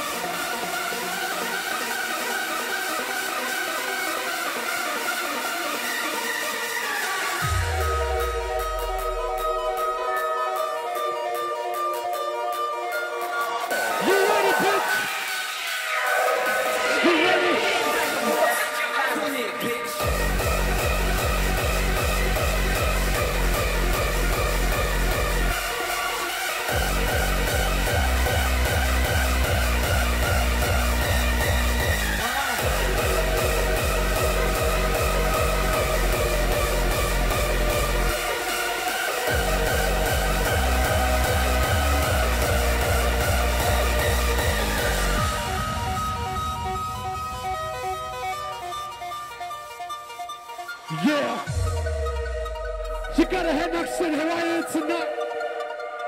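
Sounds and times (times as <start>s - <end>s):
synth melody: 0.0s - 56.0s.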